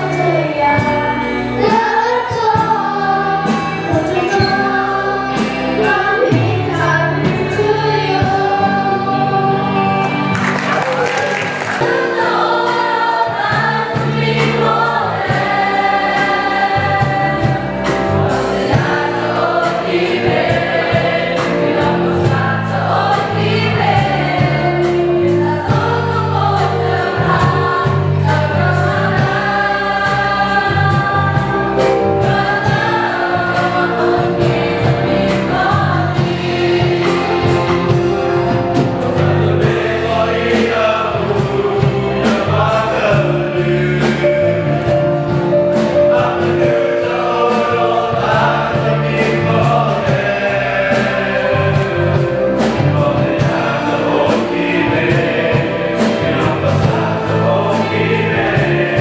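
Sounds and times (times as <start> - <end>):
children's choir singing: 0.0 - 59.0
low instrumental accompaniment: 0.0 - 59.0.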